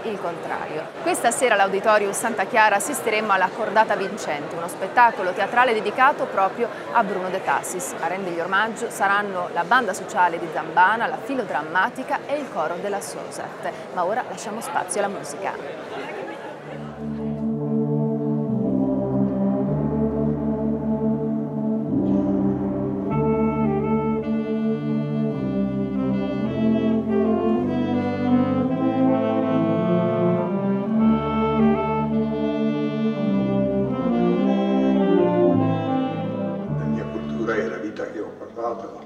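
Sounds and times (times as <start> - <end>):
wind band playing brass chords: 16.7 - 38.1.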